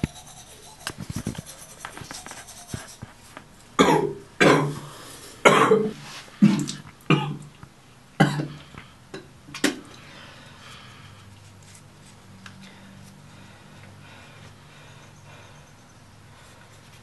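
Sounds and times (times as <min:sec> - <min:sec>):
toothbrush scrubbing: 0:00.0 - 0:03.3
young man coughing hard: 0:03.8 - 0:04.8, 0:05.4 - 0:07.4, 0:08.2 - 0:08.6.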